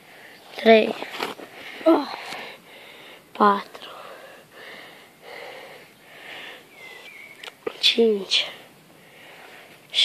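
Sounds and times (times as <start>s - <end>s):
soft breaths: 0.0s - 10.0s.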